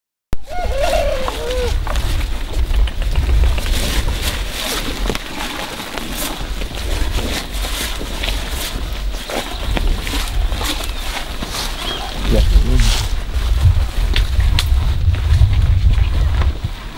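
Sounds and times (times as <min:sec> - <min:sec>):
cattle chewing leaves: 0:00.8 - 0:16.9
leaves rustling and snapping: 0:01.2 - 0:16.6
steady low rumble: 0:01.5 - 0:16.9.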